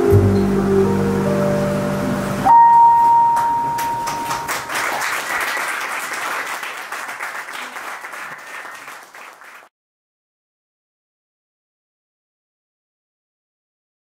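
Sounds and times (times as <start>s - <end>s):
keyboard and upright bass: 0.0s - 4.5s
long whistle: 2.4s - 4.2s
audience clapping: 3.4s - 9.7s.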